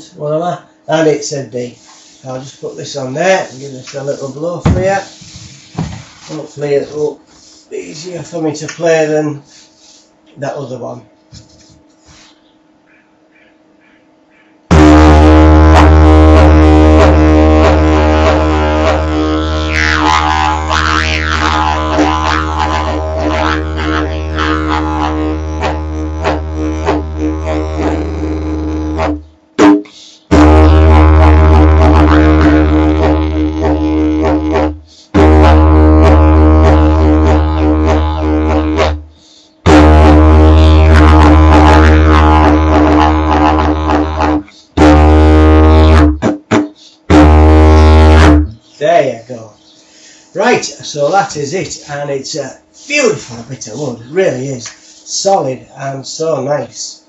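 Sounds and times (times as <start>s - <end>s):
didgeridoo drone: 14.7s - 48.7s.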